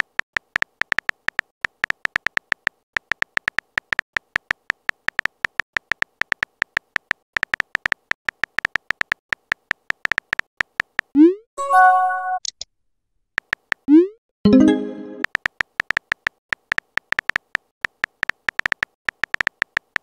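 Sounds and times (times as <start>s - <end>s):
phone keyboard key clicks: 15.2s - 20.0s.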